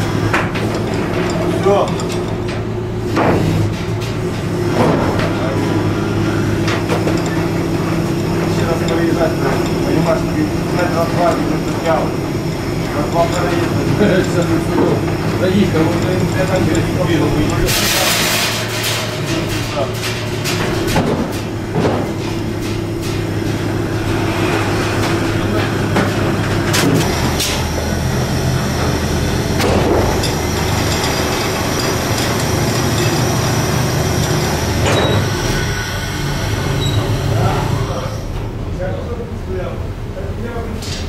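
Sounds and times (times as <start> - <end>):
metal knocks and clanks: 0.0 - 36.0
lifting machinery humming: 0.0 - 41.0
workers' voices: 0.0 - 41.0.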